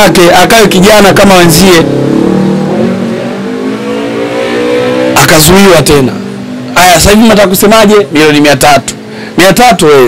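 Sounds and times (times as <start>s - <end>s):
vehicle engine accelerating: 1.5s - 6.8s.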